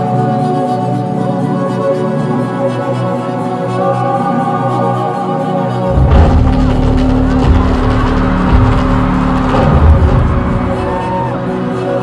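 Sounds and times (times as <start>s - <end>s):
heavy low bass: 5.9s - 11.6s.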